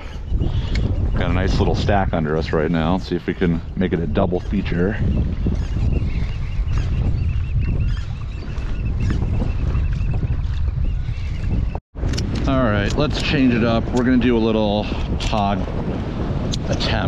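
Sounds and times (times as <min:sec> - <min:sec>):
wind rumbling on microphone: 0:00.0 - 0:17.0
water sloshing around kayak: 0:02.4 - 0:12.5.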